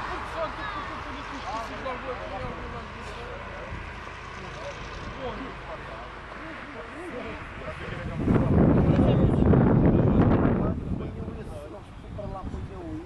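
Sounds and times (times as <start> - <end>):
wind buffeting microphone: 6.8 - 13.0.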